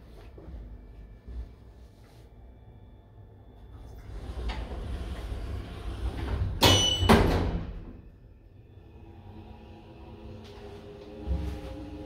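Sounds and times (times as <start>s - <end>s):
sliding lift doors: 3.7s - 8.0s, 8.8s - 12.0s.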